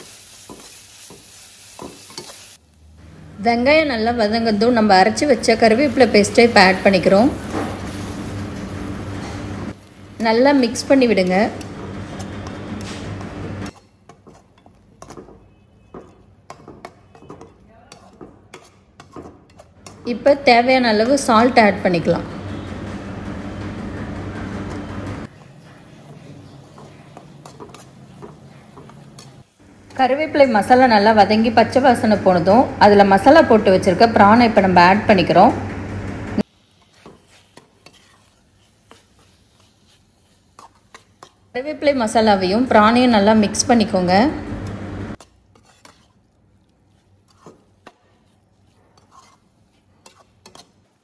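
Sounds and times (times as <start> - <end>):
metal spoon scraping metal pan: 10.3 - 22.7, 26.1 - 31.3, 36.7 - 43.9, 45.1 - 46.3, 46.9 - 51.0.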